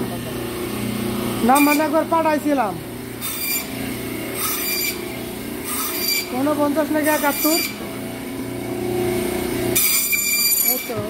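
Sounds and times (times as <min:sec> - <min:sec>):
band saw motor humming: 0:00.0 - 0:11.0
saw blade whining through fish: 0:01.4 - 0:02.0, 0:03.2 - 0:07.9, 0:09.6 - 0:11.0.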